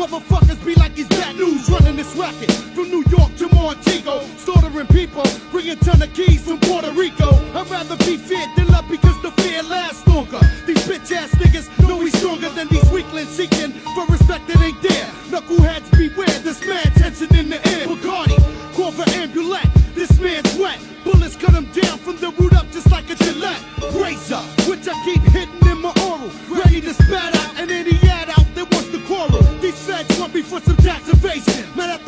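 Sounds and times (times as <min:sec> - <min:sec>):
rapping over a beat: 0:00.0 - 0:32.0
heavy kick drum: 0:00.3 - 0:01.1, 0:01.7 - 0:02.2, 0:03.1 - 0:03.9, 0:04.6 - 0:05.2, 0:05.8 - 0:06.6, 0:07.2 - 0:07.6, 0:08.6 - 0:09.4, 0:10.1 - 0:10.7, 0:11.4 - 0:12.1, 0:12.7 - 0:13.2, 0:14.1 - 0:14.9, 0:15.6 - 0:16.2, 0:16.9 - 0:17.6, 0:18.3 - 0:18.6, 0:19.6 - 0:20.4, 0:21.2 - 0:23.2, 0:25.2 - 0:27.3, 0:27.9 - 0:29.7, 0:30.7 - 0:31.4.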